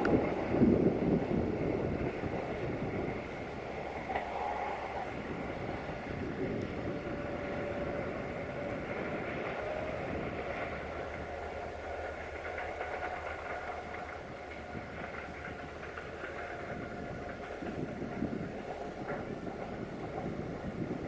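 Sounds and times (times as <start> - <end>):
diesel locomotive engine rumble: 0.0 - 21.0
train wheel and rail noise: 0.0 - 21.0.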